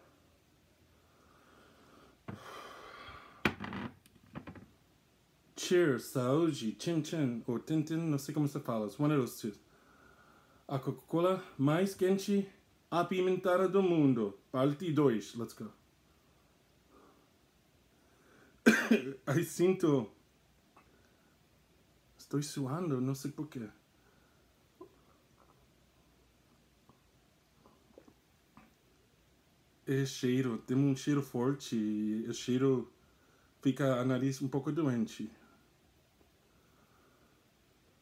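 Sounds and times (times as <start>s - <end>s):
man breathing through nose: 1.1s - 3.4s
man coughing: 18.7s - 19.3s.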